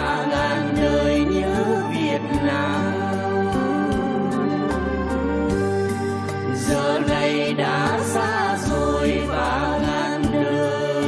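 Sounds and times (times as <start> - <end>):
band and orchestra playing slow music: 0.0 - 7.8.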